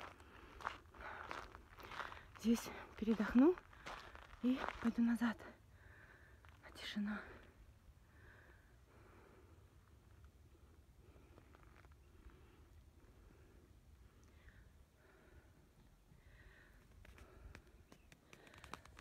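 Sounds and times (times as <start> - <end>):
faint low rumble: 0.0 - 18.1.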